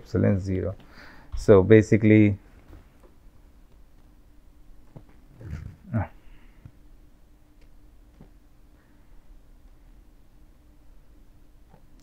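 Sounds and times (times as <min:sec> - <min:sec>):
low steady hum: 0:00.0 - 0:12.0
low wordless vocal noises: 0:05.4 - 0:06.2.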